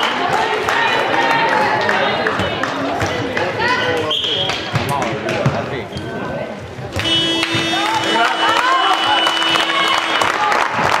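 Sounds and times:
applause and clapping: 0.0s - 3.5s, 7.4s - 11.0s
buzzer steady tone: 7.0s - 9.9s
people shouting: 7.4s - 10.5s.

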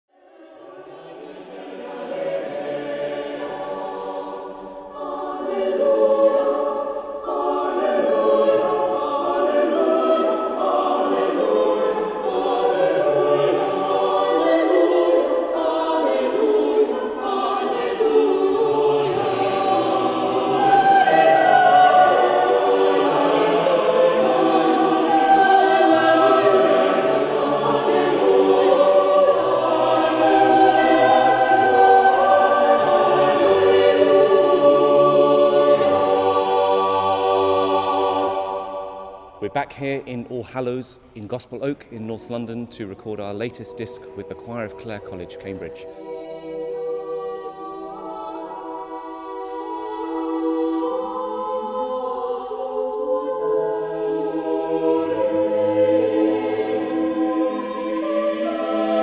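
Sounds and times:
choir singing in harmony: 0.1s - 40.8s, 41.6s - 59.0s.

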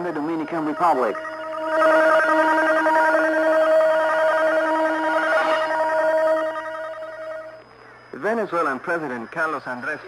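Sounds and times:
steady held electronic tones: 0.0s - 10.0s.

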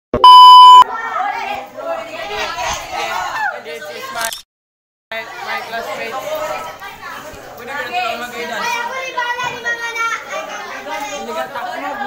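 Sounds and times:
young voices chattering: 0.9s - 4.2s, 5.2s - 12.0s.

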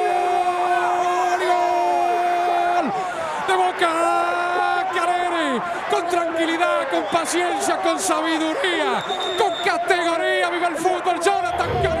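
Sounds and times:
man talking: 9.7s - 12.0s.

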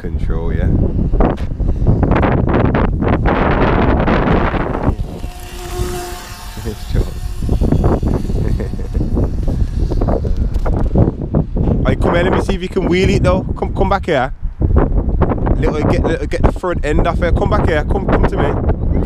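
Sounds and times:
steady whine: 0.0s - 13.5s
wind buffeting microphone: 0.0s - 19.0s.

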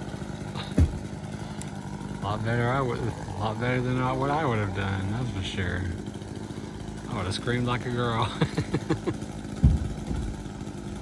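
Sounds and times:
engine idling: 0.0s - 11.0s
heavy thump: 0.7s - 1.0s, 9.6s - 10.4s.

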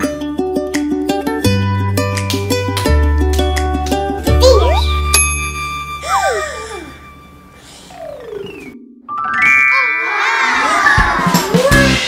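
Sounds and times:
whistly tone sliding down: 8.0s - 11.1s
chime: 9.1s - 11.3s.

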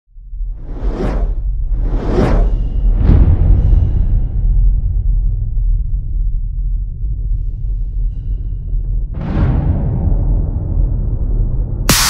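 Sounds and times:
deep low rumble: 0.1s - 12.0s
cinematic whoosh: 0.5s - 4.4s.

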